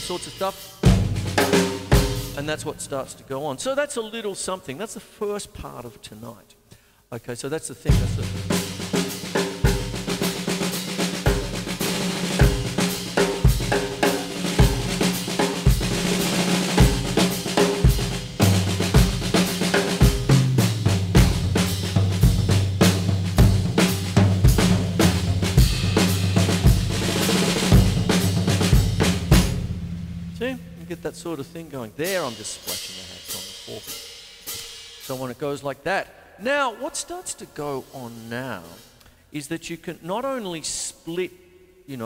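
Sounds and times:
snare drum: 0.0 - 2.4, 7.9 - 30.6
bass drum strokes: 0.0 - 2.7, 7.9 - 34.0
cymbals and hi-hats: 0.0 - 3.2, 7.7 - 42.0.

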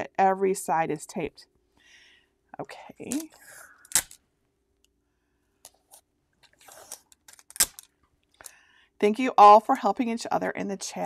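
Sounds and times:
tape unrolling rasp: 5.9 - 7.9.

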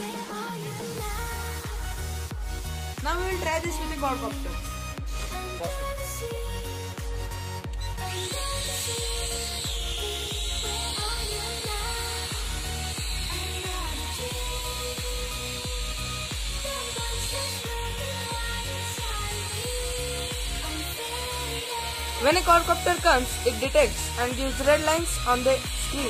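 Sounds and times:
background music with beat: 0.0 - 26.0
quadcopter drone whine: 0.0 - 26.0.

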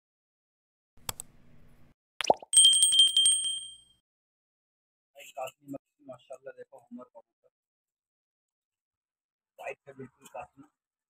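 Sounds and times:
bright bell ding with flutter: 2.6 - 3.9.

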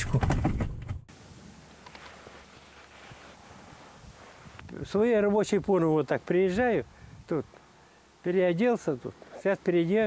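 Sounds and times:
outdoor background hiss: 1.0 - 10.0
man talking: 4.7 - 7.6, 8.2 - 10.0.

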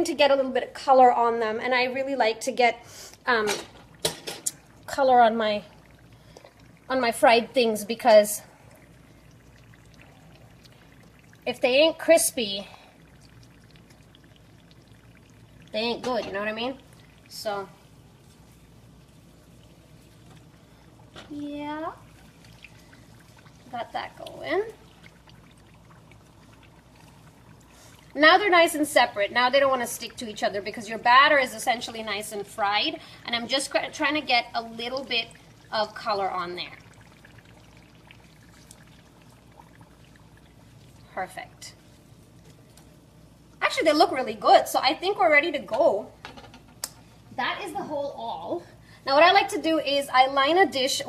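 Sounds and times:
food deep-frying in oil: 0.0 - 51.0.

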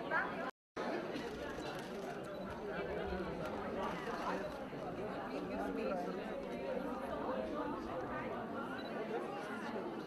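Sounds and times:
murmur of overlapping voices: 0.0 - 10.0.

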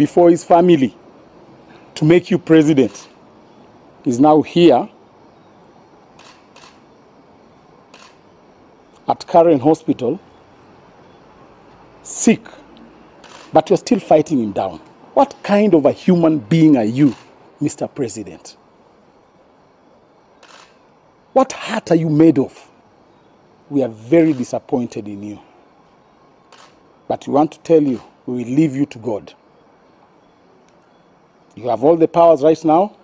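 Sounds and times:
faint background hiss: 0.0 - 33.0
low steady background noise: 0.0 - 33.0
short soft hissing noise: 5.6 - 6.9, 7.7 - 8.3, 12.6 - 13.6, 20.3 - 20.9
faint camera shutter clicks: 6.2 - 6.9, 7.9 - 8.3, 13.2 - 13.6, 17.1 - 17.4, 20.4 - 20.8, 26.4 - 26.9.

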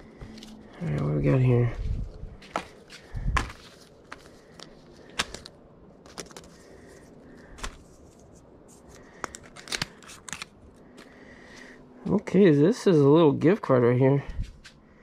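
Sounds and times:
paper and plastic crinkling: 2.4 - 11.3.

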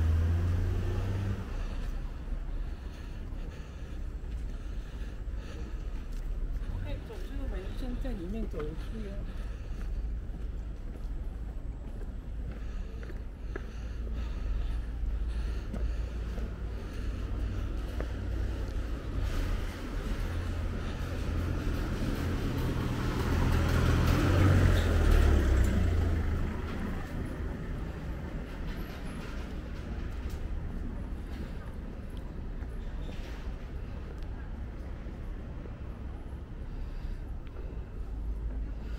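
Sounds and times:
bus passing: 0.0 - 38.9
low street hum: 0.0 - 38.9.

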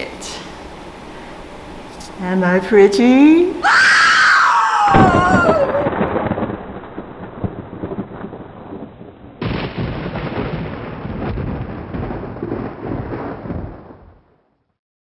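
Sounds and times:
low noisy rumble: 0.0 - 4.4
sharp crackles: 5.0 - 14.4.

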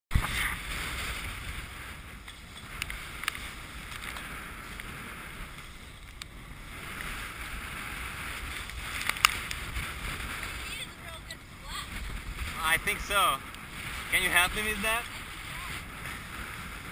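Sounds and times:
water rushing past a hull: 0.1 - 16.9
wind buffeting microphone: 0.1 - 16.9.

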